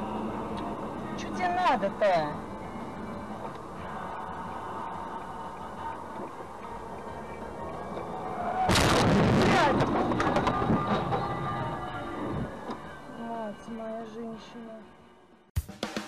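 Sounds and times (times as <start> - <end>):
road noise: 0.0 - 15.5
vehicle crash: 8.0 - 12.9.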